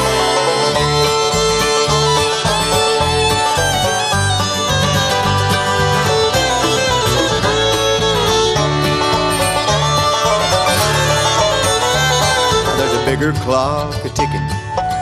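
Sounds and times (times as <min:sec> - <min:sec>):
acoustic guitar: 0:00.0 - 0:15.0
banjo: 0:00.0 - 0:15.0
bowed fiddle: 0:00.0 - 0:15.0
stepping bass line: 0:00.0 - 0:15.0.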